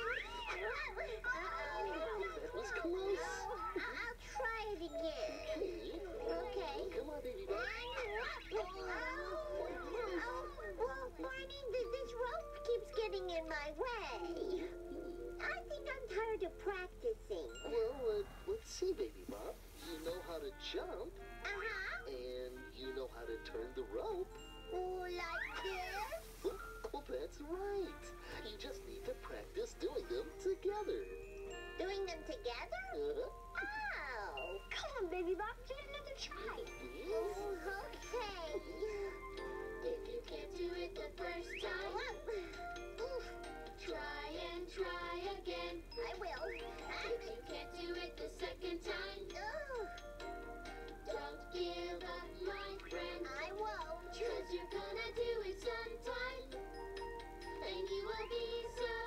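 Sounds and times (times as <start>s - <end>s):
light instrumental backing: 0.0s - 59.0s
television background music: 0.0s - 59.0s
voices from television: 0.0s - 59.0s.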